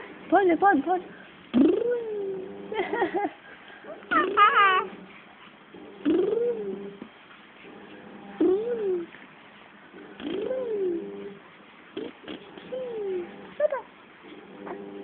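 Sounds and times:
baby babbling and cooing: 3.9s - 5.0s
baby squealing: 4.0s - 4.9s.

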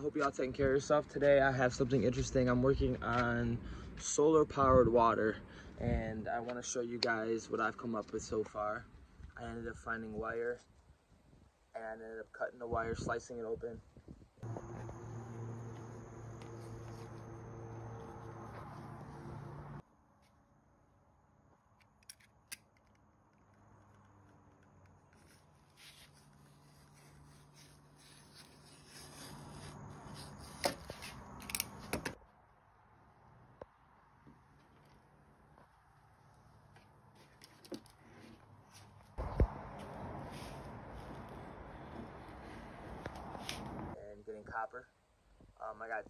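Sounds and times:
copper wire rubbing: 23.9s - 32.1s.

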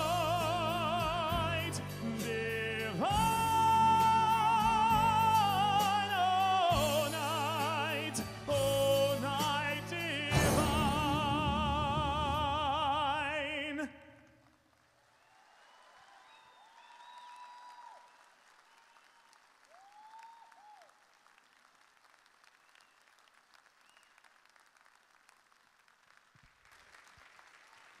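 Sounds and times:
music: 0.0s - 14.1s
audience applause: 14.4s - 28.0s
short cheers: 15.2s - 21.0s.

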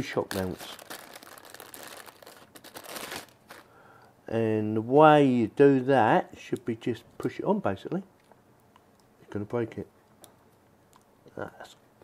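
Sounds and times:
plastic bag crinkling: 0.0s - 3.8s.

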